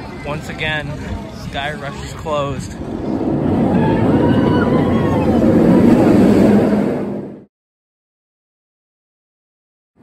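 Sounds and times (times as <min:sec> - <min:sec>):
faint voices: 0:00.0 - 0:06.0
roller coaster rumbling on track: 0:00.0 - 0:07.5.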